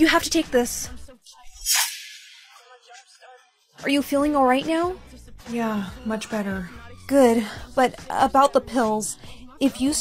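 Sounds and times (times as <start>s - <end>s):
whoosh sound effect: 1.6s - 2.8s.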